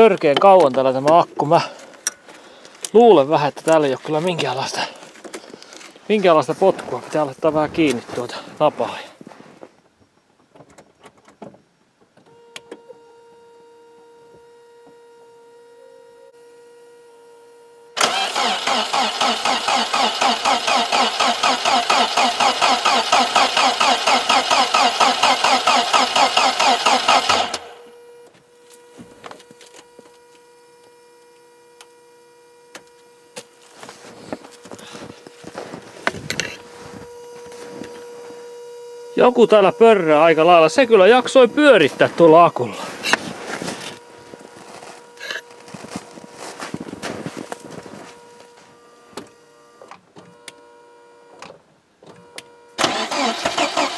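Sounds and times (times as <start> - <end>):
faint steady buzzing: 0.0 - 22.9, 26.1 - 53.9
engine cranking by starter motor: 18.0 - 27.9, 52.8 - 53.9.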